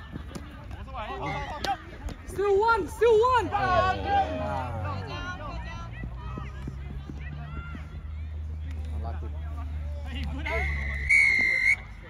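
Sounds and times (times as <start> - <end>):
referee's whistle blast: 10.5 - 11.9.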